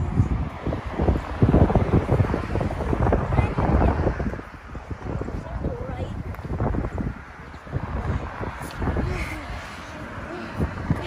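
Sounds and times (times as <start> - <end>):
wind on microphone: 0.0 - 11.0
child's voice: 3.1 - 4.3, 5.3 - 6.2, 8.9 - 11.0.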